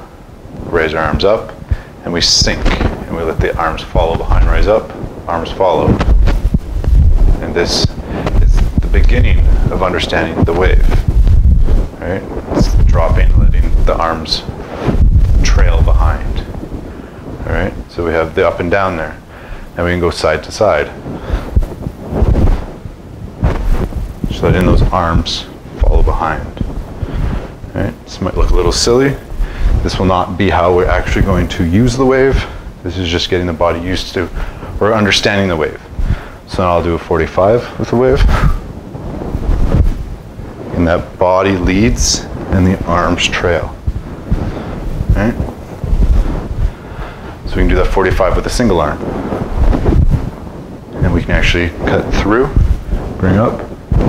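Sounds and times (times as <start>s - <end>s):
low dull thuds: 0.0s - 32.8s, 35.8s - 36.5s, 38.1s - 54.0s
wind rumbling on microphone: 0.0s - 54.0s
clothing rustling: 0.4s - 54.0s.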